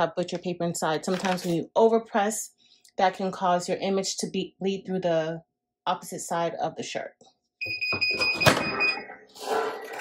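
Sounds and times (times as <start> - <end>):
paper rustling: 1.1 - 1.6.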